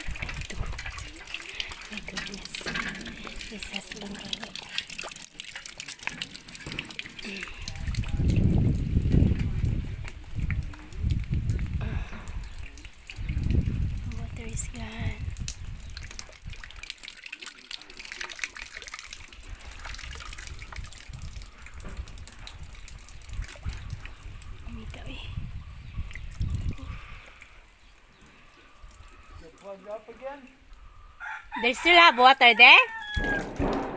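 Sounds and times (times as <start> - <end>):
water trickling and dripping: 0.0 - 33.9.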